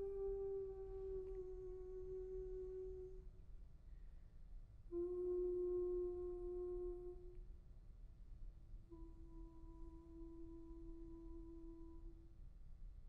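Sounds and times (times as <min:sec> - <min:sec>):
soprano singing long notes: 0:00.0 - 0:03.2, 0:04.9 - 0:07.4, 0:08.9 - 0:12.3.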